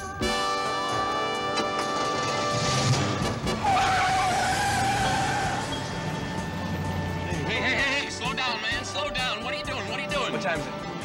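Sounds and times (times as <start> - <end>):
tires squealing: 1.4 - 8.2.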